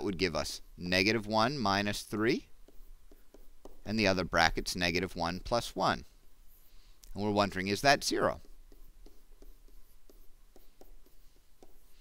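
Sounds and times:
stylus tapping and scratching on screen: 0:00.2 - 0:12.0.

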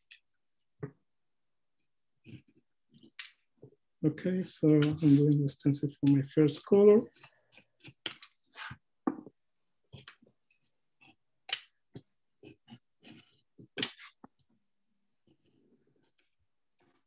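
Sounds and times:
craft knife cutting paper: 0:07.0 - 0:17.0.

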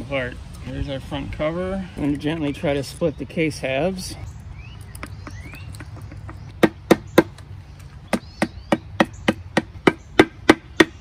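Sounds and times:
faint bird chirps: 0:04.1 - 0:10.2.

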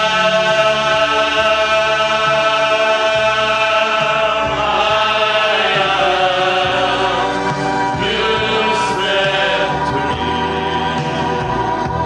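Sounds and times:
men's choir singing in harmony: 0:00.0 - 0:12.0.

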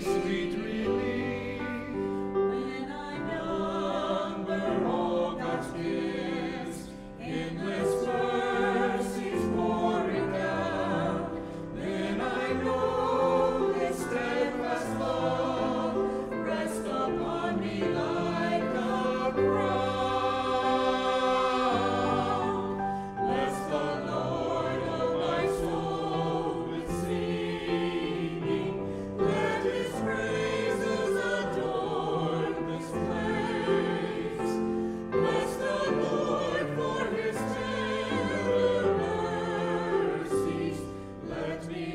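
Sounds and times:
church choir singing: 0:00.0 - 0:41.9.

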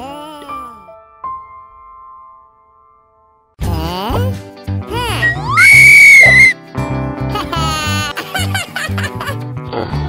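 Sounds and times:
cartoon whistle: 0:05.2 - 0:06.6.

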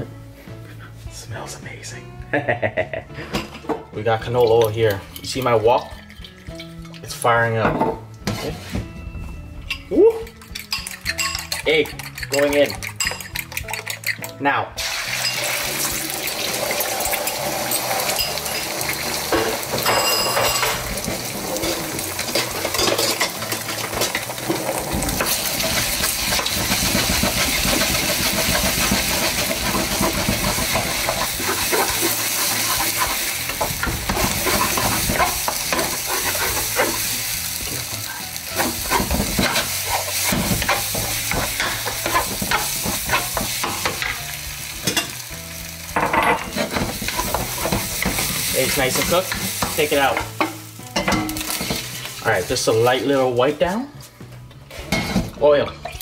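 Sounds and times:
eggs sizzling in hot oil: 0:04.3 - 0:07.5, 0:09.7 - 0:53.7
wooden spatula scraping a pan: 0:21.0 - 0:37.9, 0:38.5 - 0:43.6, 0:46.5 - 0:50.2.

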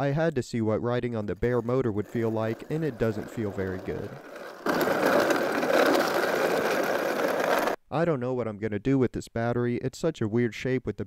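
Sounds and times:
scooter hub motor rattling: 0:02.2 - 0:07.8.

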